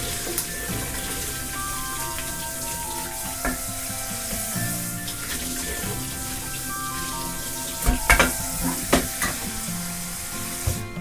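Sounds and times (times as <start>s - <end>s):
food frying sizzle: 0.0s - 11.0s
soft background music: 0.0s - 11.0s.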